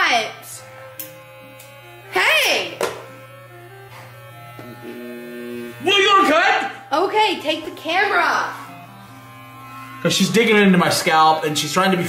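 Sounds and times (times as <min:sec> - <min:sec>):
electric hair clippers buzzing: 0:00.0 - 0:12.0
quiet background music: 0:00.0 - 0:12.0.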